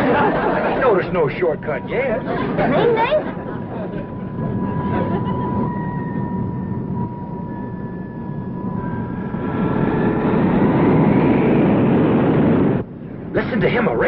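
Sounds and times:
jet airliner engines whining: 0:00.0 - 0:14.0.

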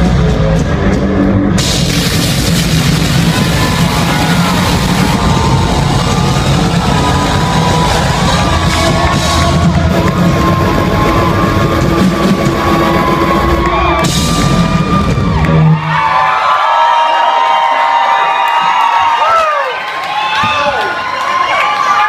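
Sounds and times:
live rock band playing: 0:00.0 - 0:15.8
crowd cheering and whooping: 0:01.6 - 0:22.0.

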